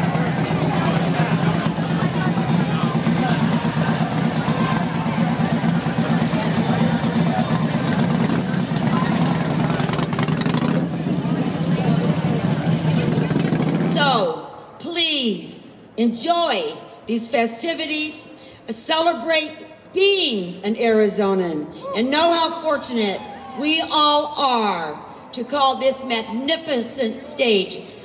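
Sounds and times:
motorcycle engine idling: 0:00.0 - 0:13.9
crowd talking: 0:00.0 - 0:14.7.

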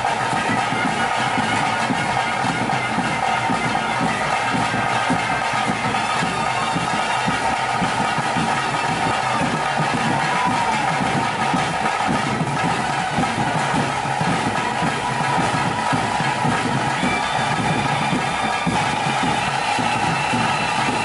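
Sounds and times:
rapid drumming: 0:00.0 - 0:21.0
wind instrument melody: 0:00.0 - 0:21.0.

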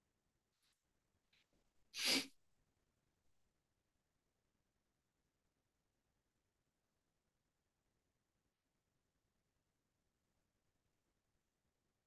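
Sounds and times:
sharp burst of breath: 0:02.0 - 0:02.3.

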